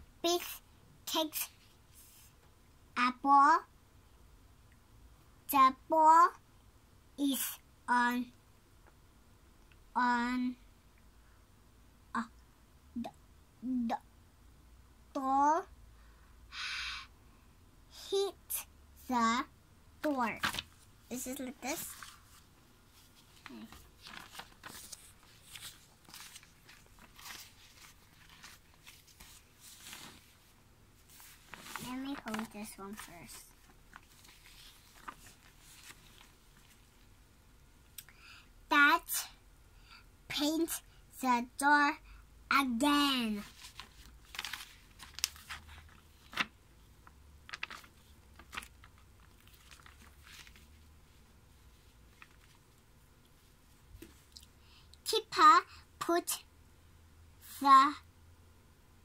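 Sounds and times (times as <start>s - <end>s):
book pages rustling: 20.0s - 37.1s, 42.9s - 54.4s.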